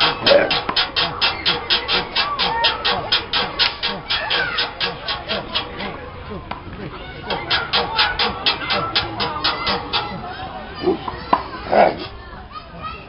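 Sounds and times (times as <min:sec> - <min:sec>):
hip-hop backing track: 0:00.0 - 0:12.2
voices: 0:00.0 - 0:13.0.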